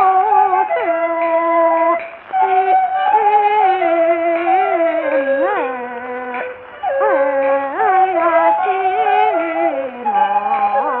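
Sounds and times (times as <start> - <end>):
musical accompaniment: 0.0 - 11.0.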